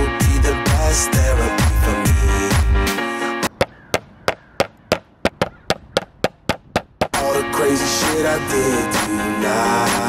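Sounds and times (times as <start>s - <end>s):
background music: 0.0s - 3.5s, 7.1s - 10.0s
hammer tapping copper sheet: 4.3s - 7.2s.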